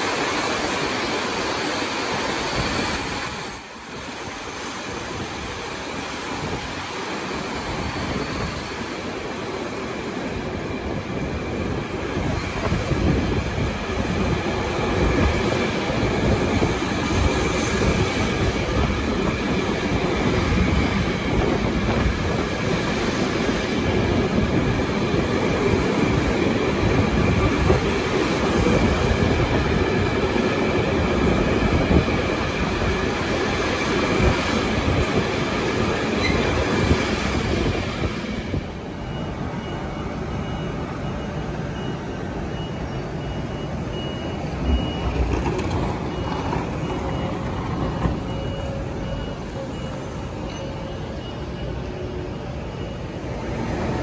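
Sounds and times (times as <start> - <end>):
faint steady squeal: 1.6 - 5.4, 38.9 - 53.8
freight train wheels clattering: 44.4 - 50.8.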